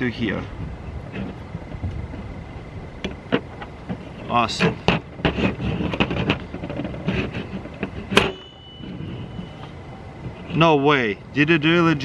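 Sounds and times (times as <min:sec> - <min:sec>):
faint ringing: 0:05.8 - 0:12.0.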